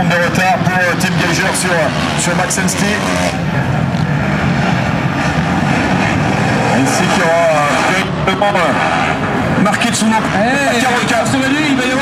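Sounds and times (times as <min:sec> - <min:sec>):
motocross bike engines droning: 0:00.0 - 0:12.0.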